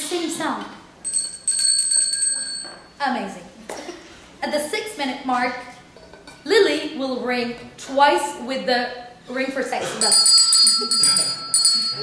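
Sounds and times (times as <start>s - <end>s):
bell ringing: 1.0s - 3.0s, 10.0s - 12.0s.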